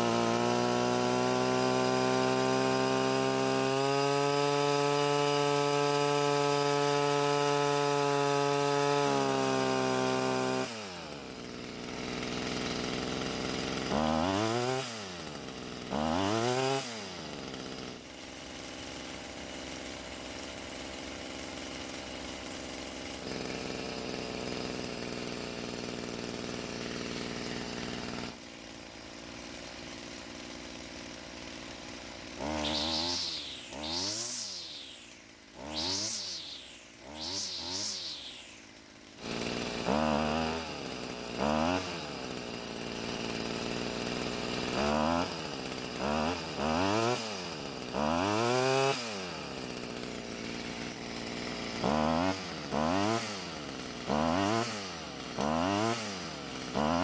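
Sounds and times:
string trimmer engine revving: 0.0s - 57.0s.

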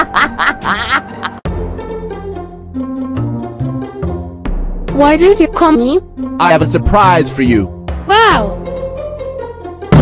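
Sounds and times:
high quick laugh: 0.0s - 1.4s
background music: 0.0s - 10.0s.

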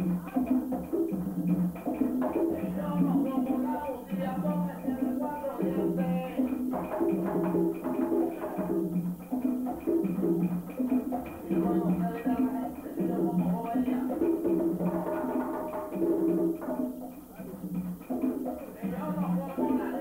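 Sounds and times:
conga drums: 0.0s - 20.0s.

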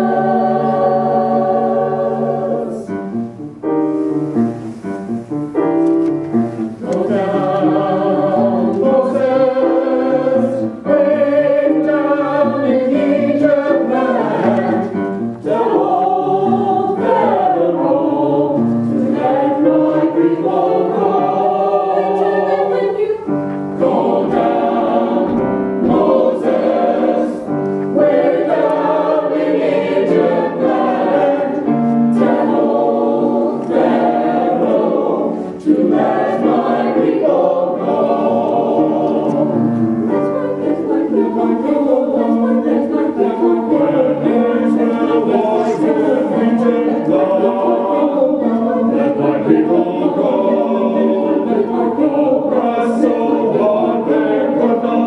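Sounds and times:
mixed choir singing: 0.0s - 3.2s, 6.6s - 55.0s
piano accompaniment: 0.0s - 55.0s.

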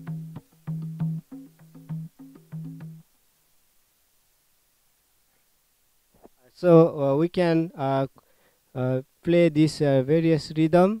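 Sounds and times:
hand drum played in quick rhythm: 0.0s - 3.0s.

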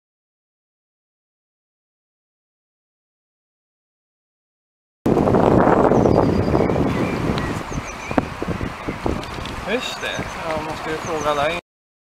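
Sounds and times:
wind buffeting microphone: 5.1s - 11.6s.

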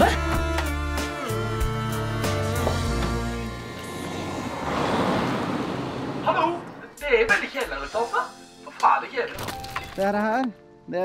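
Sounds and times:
low bass music: 0.0s - 4.8s
rushing noise: 3.5s - 6.9s.

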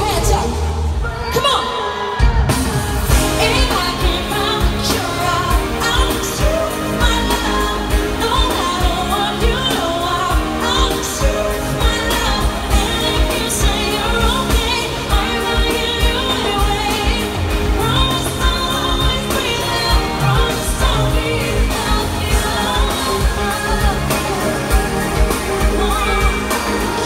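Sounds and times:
person singing: 2.2s - 27.0s
dance beat over sound system: 2.3s - 27.0s.

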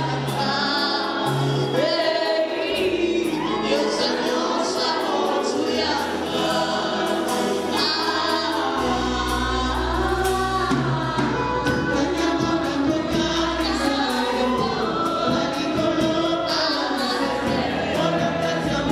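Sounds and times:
woman singing lead: 0.0s - 18.9s.

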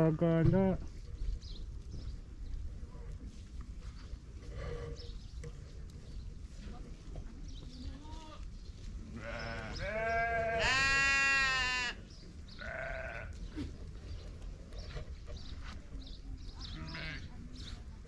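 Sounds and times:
sheep and goats bleating: 7.9s - 8.5s, 9.1s - 13.6s, 16.6s - 17.3s.

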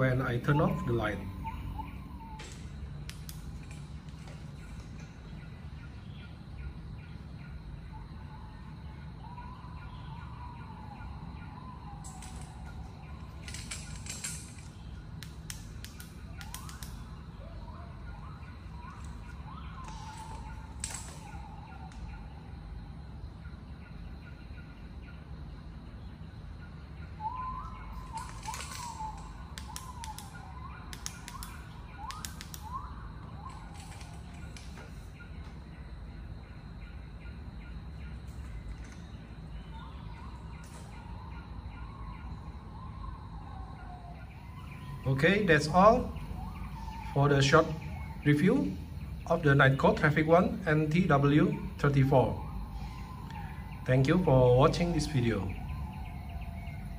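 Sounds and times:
birds chirping: 0.0s - 56.9s
low background hum: 0.0s - 56.9s
sharp clicks: 2.4s - 4.4s, 12.0s - 17.2s, 28.0s - 34.8s.

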